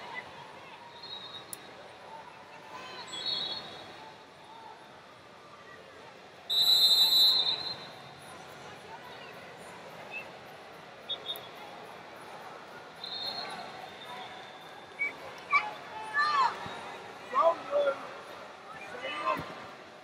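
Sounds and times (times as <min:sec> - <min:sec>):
murmur of arena crowd: 0:00.0 - 0:20.0
referee's whistle blasts: 0:03.0 - 0:03.8, 0:06.5 - 0:08.0, 0:13.0 - 0:13.6.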